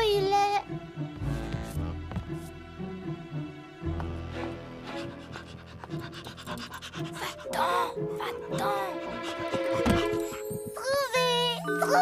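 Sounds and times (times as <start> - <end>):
soft background music: 0.0 - 12.0
dog panting: 4.8 - 12.0.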